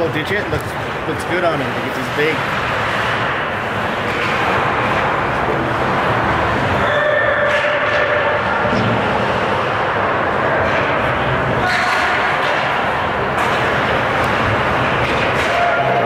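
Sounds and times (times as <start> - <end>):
skating and play on ice: 0.0 - 16.0.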